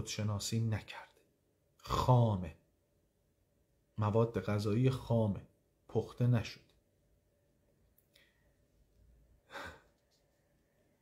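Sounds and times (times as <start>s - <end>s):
man breathing out: 9.4s - 10.0s.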